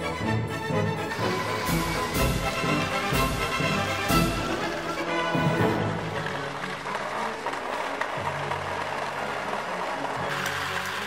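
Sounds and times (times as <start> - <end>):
background music: 0.0 - 11.0
toy train motor running: 1.0 - 3.1, 10.3 - 11.0.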